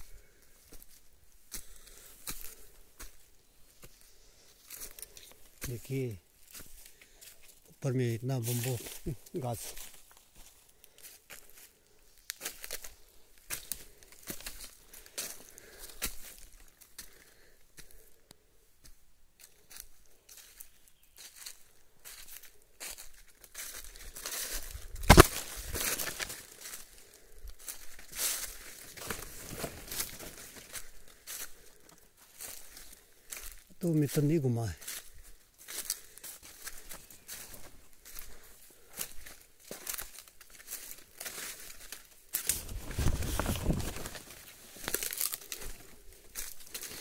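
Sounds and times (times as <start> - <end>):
footsteps crunching dry leaves: 0.0 - 18.2, 19.4 - 47.0
brushing through bamboo and undergrowth: 8.4 - 15.5, 20.3 - 34.2, 34.8 - 47.0.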